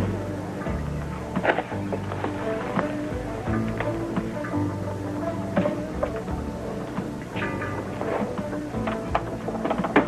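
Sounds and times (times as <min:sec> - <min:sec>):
music with held notes: 0:00.0 - 0:10.0.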